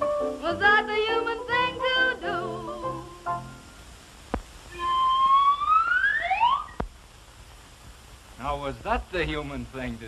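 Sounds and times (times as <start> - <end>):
whistle-like tone sliding upward: 4.7 - 6.8.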